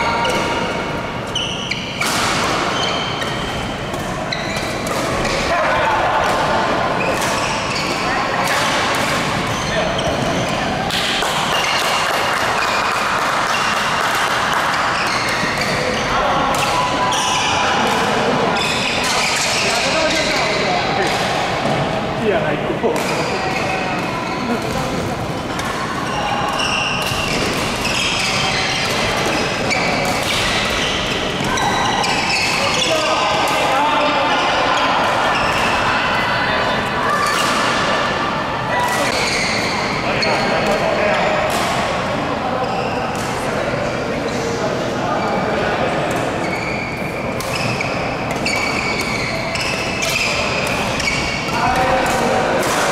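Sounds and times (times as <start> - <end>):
voices in sports hall: 0.0 - 52.9.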